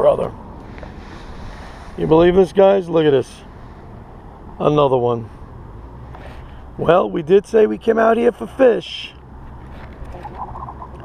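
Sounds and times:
low wind: 0:00.0 - 0:11.0
water noise: 0:09.2 - 0:11.0
catfish croaking grunts: 0:10.0 - 0:11.0.

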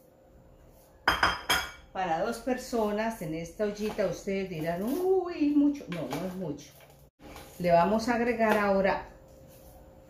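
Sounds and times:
dishware clinking: 0:01.1 - 0:01.9.

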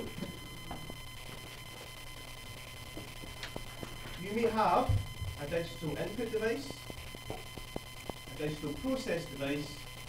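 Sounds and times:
high-pitched whines: 0:00.0 - 0:10.0
low electrical hum: 0:00.0 - 0:10.0.

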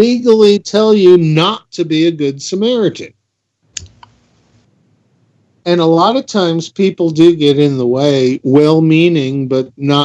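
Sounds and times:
faint hiss: 0:00.0 - 0:10.0
sharp click: 0:03.8 - 0:04.2
softer click: 0:03.8 - 0:04.2.

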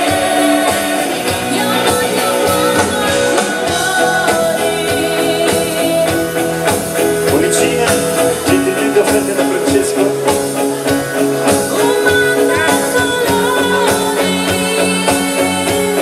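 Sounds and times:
woman singing: 0:00.0 - 0:07.2, 0:11.5 - 0:16.0
live pop band: 0:00.0 - 0:16.0.

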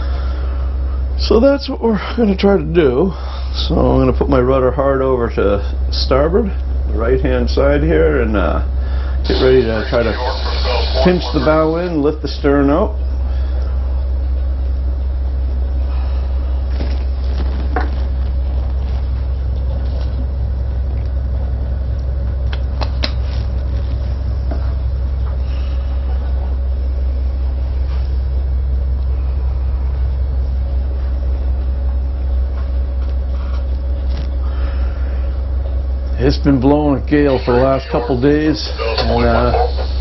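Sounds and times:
diesel engines rumbling: 0:00.0 - 0:40.0
faint steady hum: 0:00.0 - 0:40.0.

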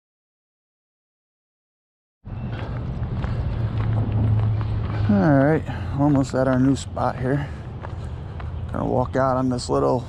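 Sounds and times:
footsteps crunching on gravel: 0:02.3 - 0:10.0.

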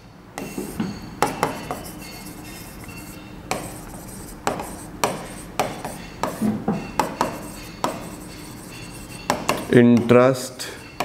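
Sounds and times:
writing tool tapping board: 0:00.6 - 0:01.9, 0:03.5 - 0:10.2.

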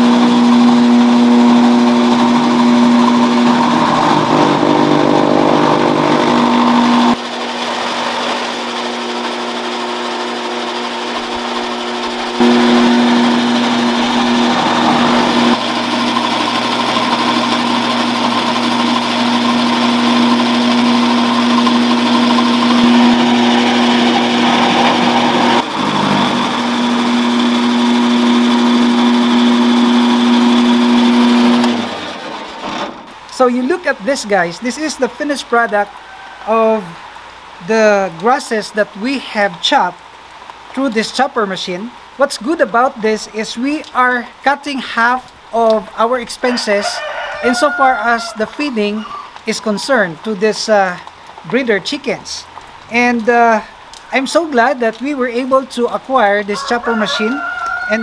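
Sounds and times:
electric grass chopper humming: 0:00.0 - 0:36.9.

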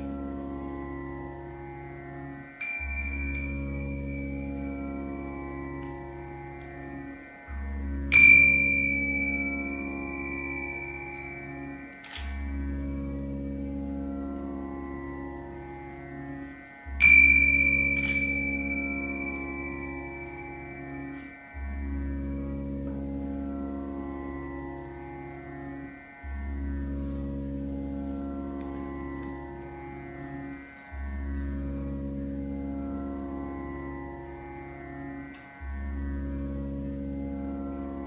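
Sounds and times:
low drone: 0:00.0 - 0:38.0
sitar played slowly: 0:00.0 - 0:38.0
bright ringing notes: 0:02.6 - 0:05.9, 0:08.1 - 0:12.7, 0:17.0 - 0:22.0.

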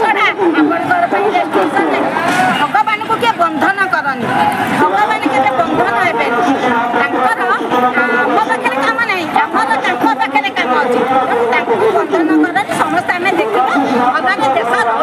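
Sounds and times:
crowd chatter: 0:00.0 - 0:15.0
woman speaking loudly: 0:00.0 - 0:15.0.

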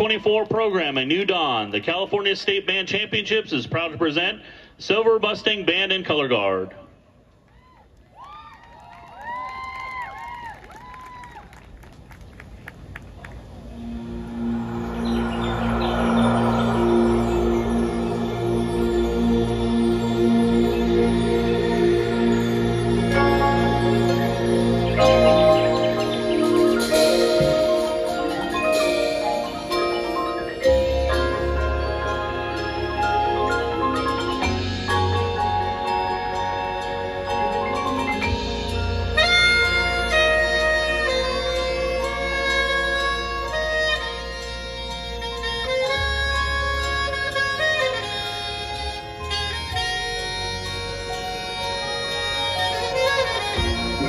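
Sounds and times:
marching band winds playing chords: 0:11.6 - 0:54.0
low sustained brass notes: 0:13.5 - 0:54.0
low bass: 0:13.6 - 0:54.0.

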